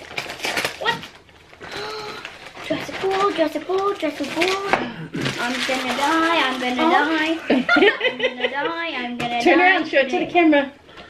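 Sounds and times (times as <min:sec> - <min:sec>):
wrapping paper tearing: 0:00.0 - 0:07.4.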